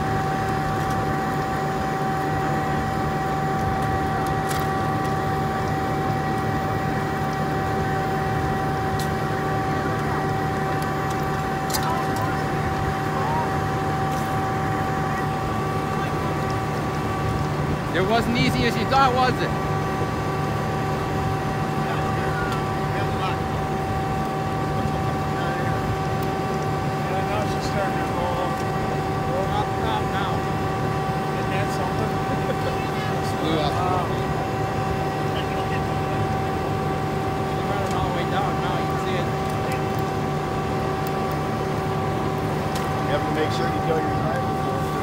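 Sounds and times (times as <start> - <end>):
steady engine drone: 0.0 - 45.0
faint voices: 11.3 - 19.6.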